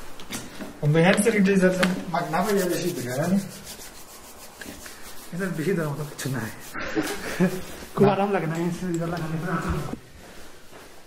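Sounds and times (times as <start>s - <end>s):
hands rubbing together: 1.8s - 9.4s.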